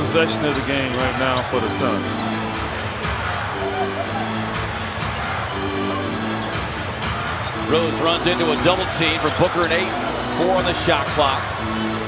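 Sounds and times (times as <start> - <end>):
arena music: 0.0 - 12.0.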